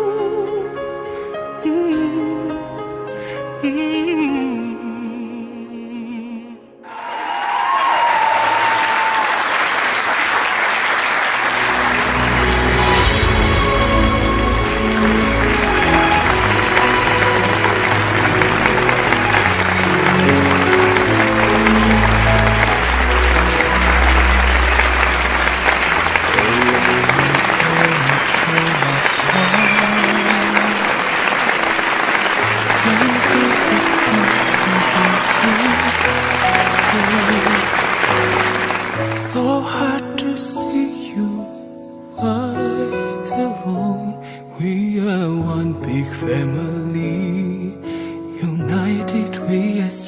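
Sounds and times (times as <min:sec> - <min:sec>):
crowd applauding: 0:06.8 - 0:39.6.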